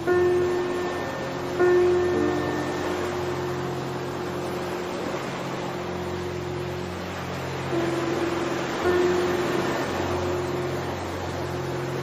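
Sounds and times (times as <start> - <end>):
low held drone: 0.0 - 12.0
ocean surf: 0.0 - 12.0
soft musical notes: 0.0 - 12.0.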